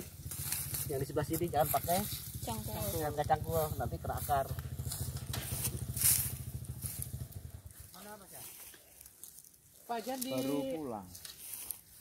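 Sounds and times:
small motorcycle engine putter: 0:04.5 - 0:07.5.

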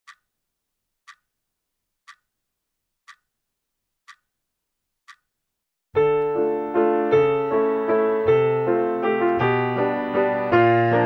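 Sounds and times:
clock ticking: 0:00.1 - 0:00.4, 0:01.0 - 0:01.4, 0:02.0 - 0:02.4, 0:03.0 - 0:03.4, 0:04.0 - 0:04.4, 0:05.0 - 0:05.4
piano music: 0:06.0 - 0:11.0.

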